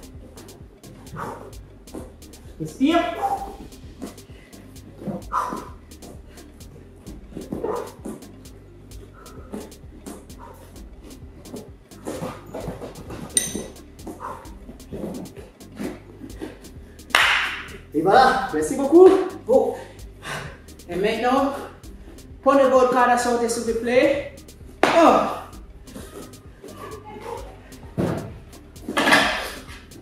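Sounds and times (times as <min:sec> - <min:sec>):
men breathing hard: 0:00.0 - 0:02.6, 0:03.2 - 0:13.3, 0:14.0 - 0:17.1, 0:19.7 - 0:20.9, 0:21.5 - 0:22.4
faint background music: 0:00.0 - 0:30.0
gasping breath: 0:01.0 - 0:01.6, 0:03.2 - 0:06.6, 0:09.0 - 0:10.8, 0:19.7 - 0:20.7
taps on gym mats: 0:07.4 - 0:08.3, 0:11.5 - 0:17.8, 0:24.8 - 0:25.4.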